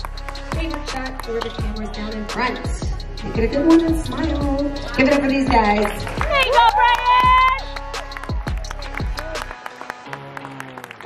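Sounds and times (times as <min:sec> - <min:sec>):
music with deep beat: 0:00.0 - 0:09.6
audience cheering and clapping: 0:05.4 - 0:11.0
high woo shout: 0:06.2 - 0:07.7.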